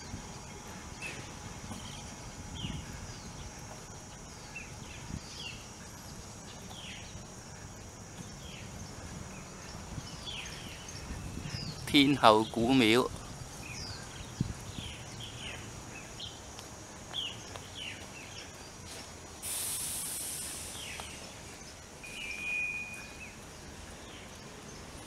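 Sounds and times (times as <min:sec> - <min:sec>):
birds chirping: 0:00.0 - 0:18.9, 0:20.5 - 0:25.0
high-pitched hiss burst: 0:19.4 - 0:21.4
held whistled note: 0:22.0 - 0:23.3.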